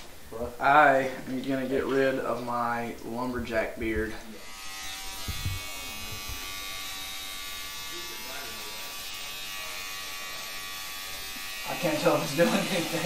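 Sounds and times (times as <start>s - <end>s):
electric beard trimmer buzzing: 4.4s - 13.0s.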